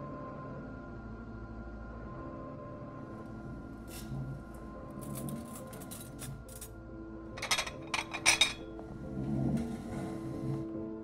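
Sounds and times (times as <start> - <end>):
soft music: 0.0 - 11.0
cutlery clinking against dishes: 7.4 - 8.7.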